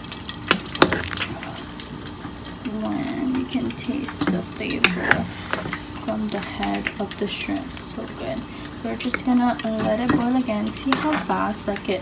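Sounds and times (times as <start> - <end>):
soup simmering and bubbling: 0.0 - 12.0.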